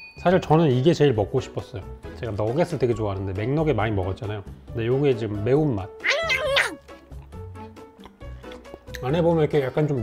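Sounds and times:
faint background music: 0.0 - 10.0
cat meowing: 6.0 - 6.8.

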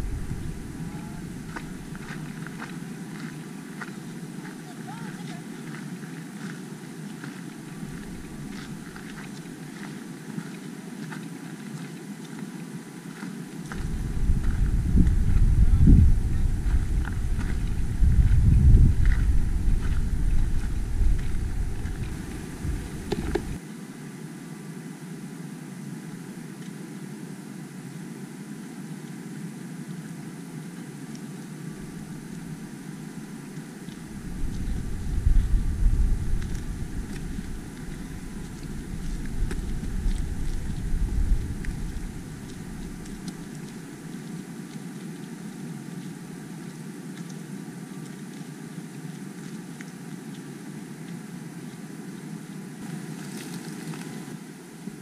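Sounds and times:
wind buffeting microphone: 0.0 - 2.5, 13.7 - 23.6, 34.0 - 43.8
outdoor background noise: 0.0 - 55.0
footsteps on rocky dirt trail: 13.7 - 23.6, 34.2 - 43.7.

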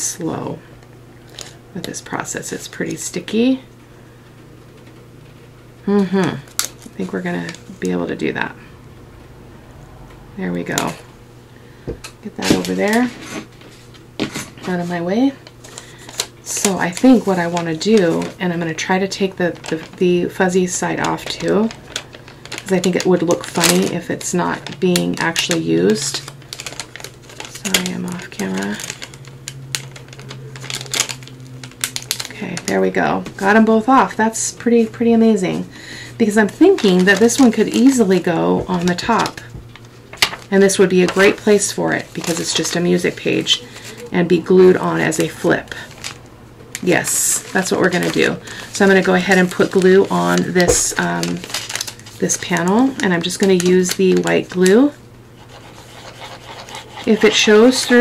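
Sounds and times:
low steady hum: 0.0 - 58.0
hands rubbing paper: 55.4 - 58.0.

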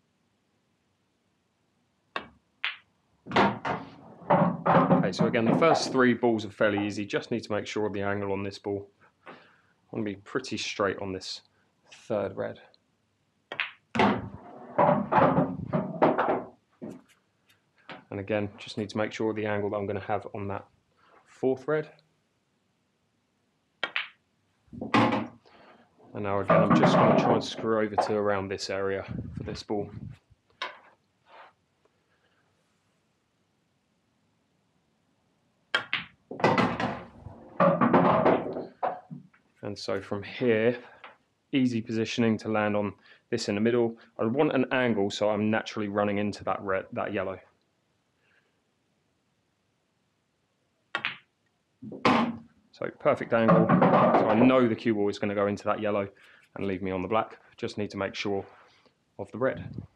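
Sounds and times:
pool balls knocking and clattering: 2.2 - 6.0, 13.5 - 17.0, 23.8 - 25.4, 26.3 - 28.2, 35.8 - 39.4, 51.0 - 52.5, 53.2 - 54.7
billiard balls clicking together: 23.8 - 24.2, 35.7 - 39.4.

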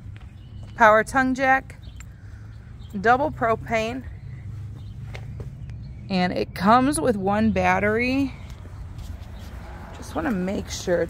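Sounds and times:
soft footsteps on pavement: 0.0 - 6.8, 7.4 - 11.0
low outdoor rumble: 0.0 - 11.0.

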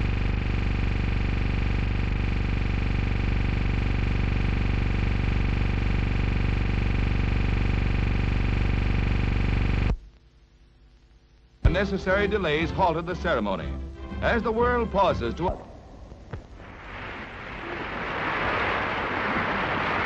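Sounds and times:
electrical hum and buzz: 0.0 - 20.0
static hiss: 0.0 - 20.0.

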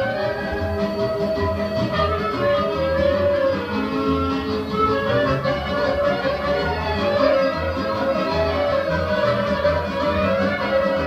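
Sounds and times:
folk dance band playing: 0.0 - 11.0.

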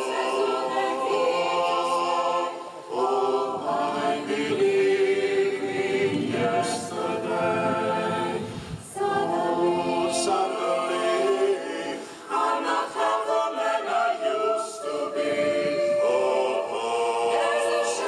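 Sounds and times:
choir singing a cappella: 0.0 - 18.0.

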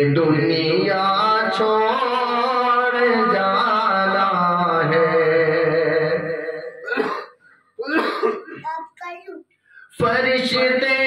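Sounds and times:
man singing: 0.0 - 7.0, 9.8 - 11.0.

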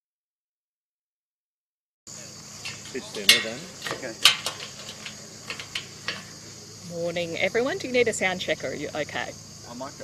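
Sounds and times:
high insect drone: 2.1 - 10.0
woman's voice: 6.8 - 10.0.

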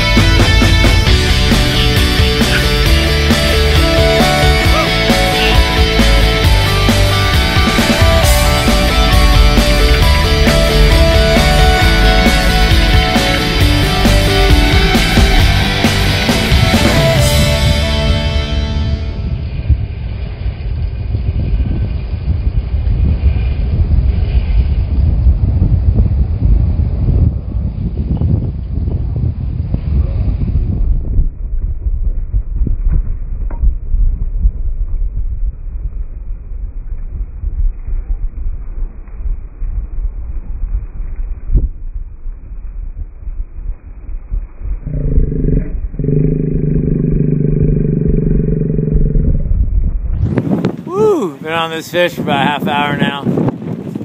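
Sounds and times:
boat engine noise: 0.0 - 20.7, 44.9 - 51.6
loud wind rumble on microphone: 0.0 - 54.0
water under a boat: 28.5 - 50.9.

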